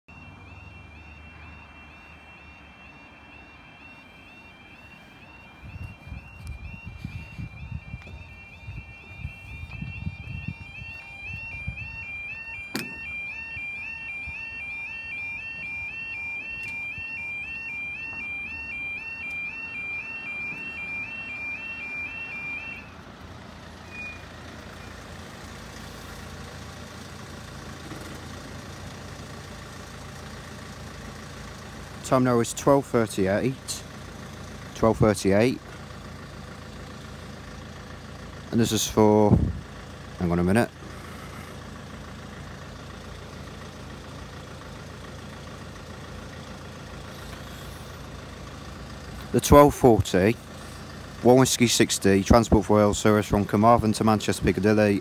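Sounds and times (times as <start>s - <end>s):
two-tone electronic alarm: 0.0s - 23.0s, 23.8s - 25.1s.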